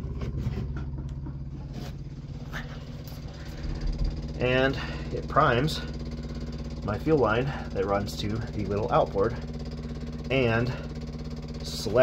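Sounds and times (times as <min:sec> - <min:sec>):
electric fuel pump humming: 0:00.0 - 0:12.0.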